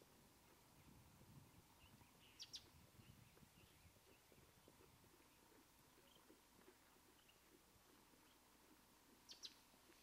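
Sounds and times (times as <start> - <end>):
horse hooves on dirt track: 0.0 - 10.0.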